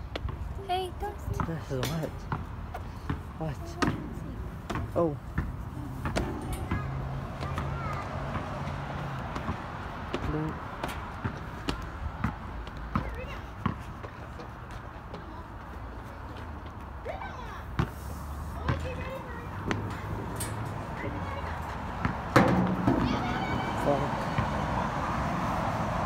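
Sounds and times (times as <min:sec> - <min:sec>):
footsteps on metal stairs: 0:03.1 - 0:08.6, 0:18.6 - 0:24.0.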